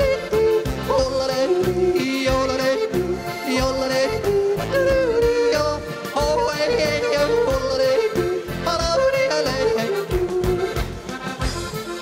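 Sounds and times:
man yodeling into a microphone: 0:00.0 - 0:10.8
folk backing music: 0:00.0 - 0:12.0.

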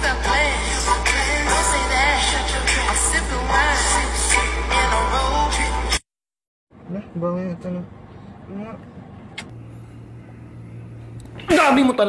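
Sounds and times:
steady low hum: 0:06.8 - 0:12.0.

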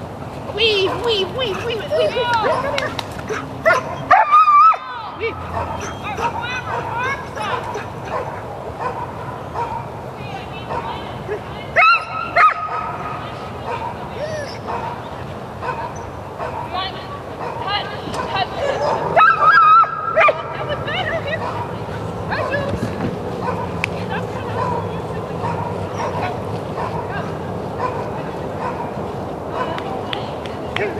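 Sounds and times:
dog barking: 0:00.8 - 0:04.8, 0:05.5 - 0:09.9, 0:10.7 - 0:15.0, 0:15.6 - 0:16.8, 0:17.4 - 0:20.5, 0:21.4 - 0:22.6, 0:23.4 - 0:23.8, 0:24.6 - 0:29.8.

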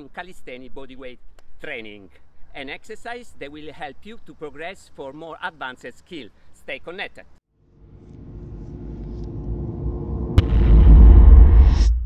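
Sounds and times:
low rumbling whoosh riser: 0:07.6 - 0:12.0.

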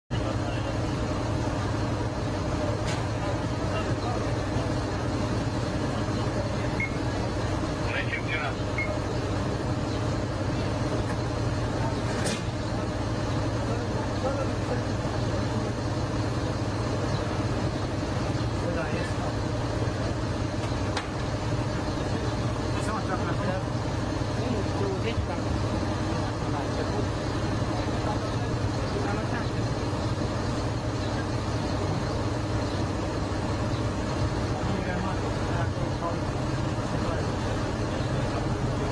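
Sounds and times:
faint voices: 0:00.1 - 0:38.9
fire engine running: 0:00.1 - 0:38.9.

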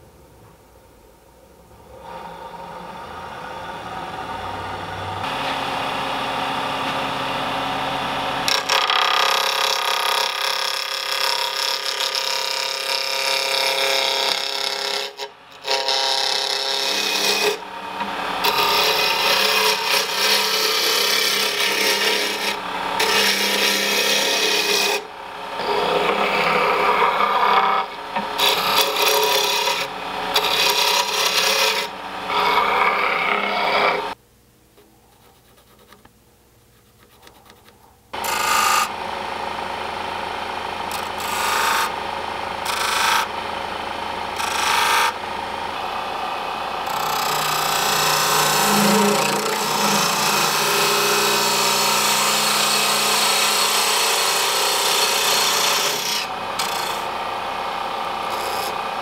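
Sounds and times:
wood lathe motor humming: 0:01.9 - 0:34.2, 0:38.2 - 0:59.0
gouge cutting spinning wood: 0:02.0 - 0:34.2, 0:38.2 - 0:59.0.

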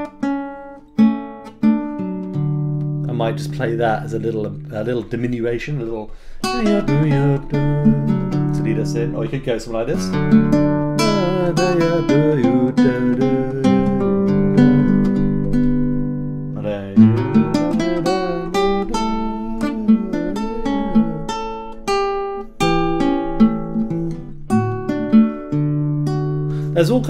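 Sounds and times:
classical guitar fingerstyle: 0:00.0 - 0:27.0.

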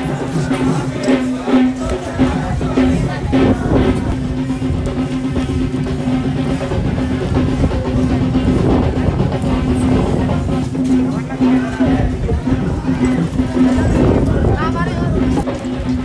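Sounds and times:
drums beating: 0:00.0 - 0:16.0.

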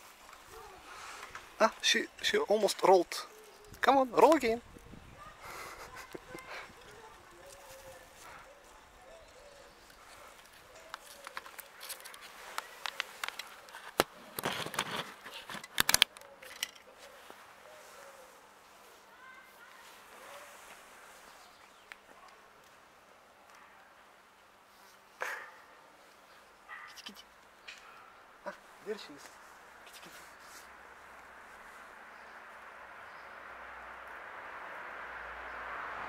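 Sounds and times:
camera handling rustle: 0:09.8 - 0:17.2.

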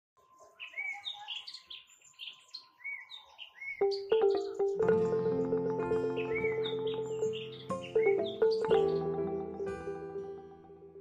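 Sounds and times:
small birds chirping: 0:00.2 - 0:10.4
music: 0:03.8 - 0:11.0.

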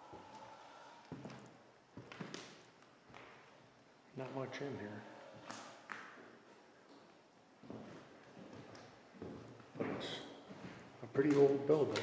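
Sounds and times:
footsteps on wooden floor: 0:07.6 - 0:11.5.

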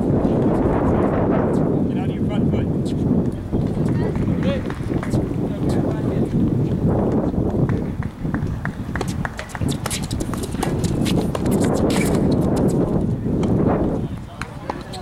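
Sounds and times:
tennis rackets hitting ball: 0:08.9 - 0:13.6, 0:14.3 - 0:15.0.

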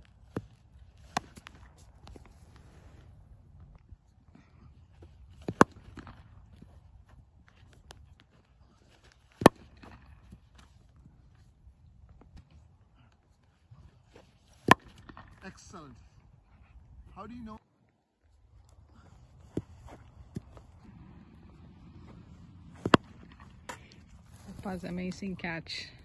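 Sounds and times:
cricket bat striking ball: 0:14.6 - 0:15.3, 0:22.0 - 0:23.8.

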